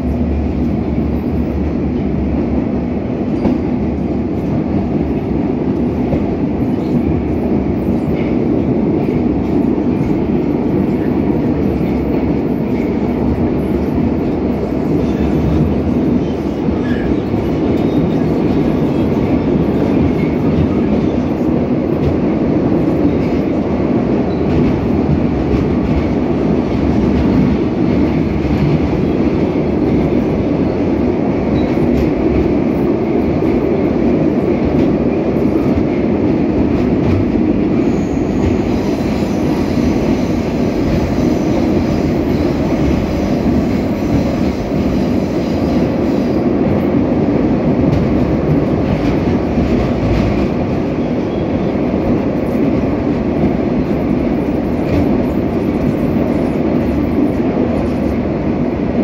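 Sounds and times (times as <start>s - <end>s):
metro train rumbling in tunnel: 0.0s - 59.0s.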